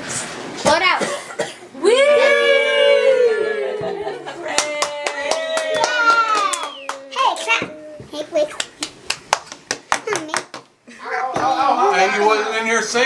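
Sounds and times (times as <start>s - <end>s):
voices: 1.8s - 8.6s
group clapping: 4.3s - 7.5s, 8.5s - 10.7s.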